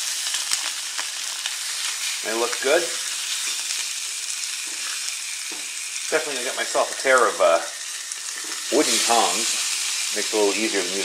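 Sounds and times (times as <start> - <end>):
hot dogs sizzling on a griddle: 0.0 - 11.0.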